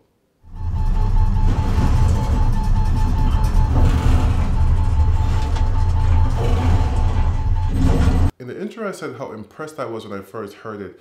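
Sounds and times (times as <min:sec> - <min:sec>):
faint rapidly pulsing high tone: 0:00.5 - 0:08.3.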